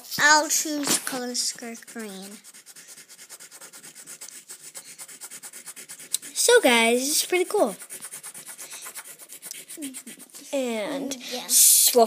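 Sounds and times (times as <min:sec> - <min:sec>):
crayon scratching on paper: 0:00.0 - 0:12.0.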